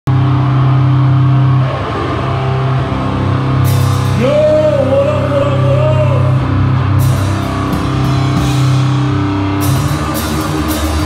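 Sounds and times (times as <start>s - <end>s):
distorted guitar and bass droning: 0.0s - 11.0s.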